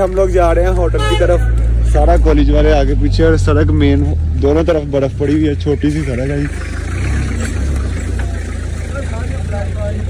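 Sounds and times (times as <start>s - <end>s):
car engine idling: 0.0s - 10.0s
faint voices talking: 0.0s - 10.0s.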